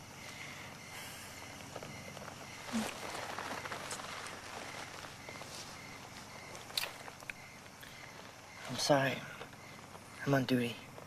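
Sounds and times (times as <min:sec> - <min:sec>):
background hiss: 0:00.0 - 0:11.0
clothing rustling: 0:01.4 - 0:08.8.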